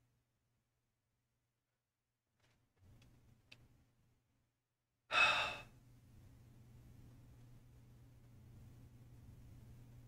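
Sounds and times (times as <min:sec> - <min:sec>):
man sighing: 0:05.1 - 0:05.7.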